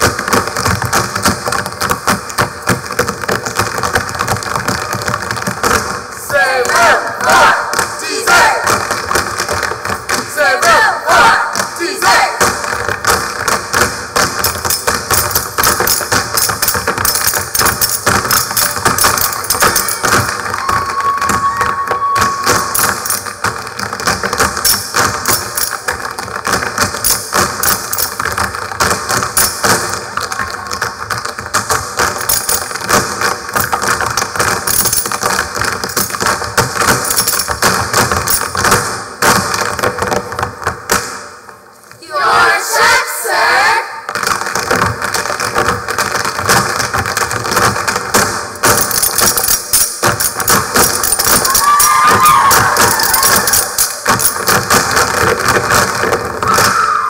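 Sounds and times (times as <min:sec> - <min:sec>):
tap shoes on stage floor: 0:00.0 - 0:42.0, 0:44.0 - 0:56.9.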